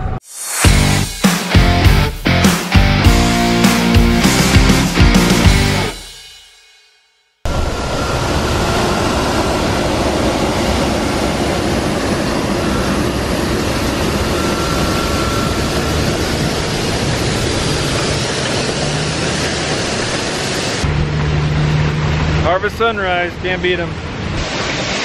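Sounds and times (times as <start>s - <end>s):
fans rushing air: 7.5s - 25.0s.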